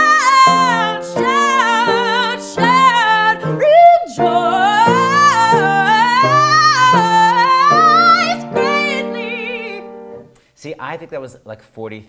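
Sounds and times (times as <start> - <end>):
woman singing: 0.0 - 10.2
man talking: 10.6 - 12.0.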